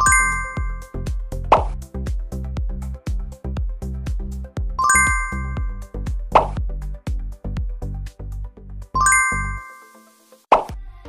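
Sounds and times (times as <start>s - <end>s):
bouncy plucked background music: 0.0s - 11.0s.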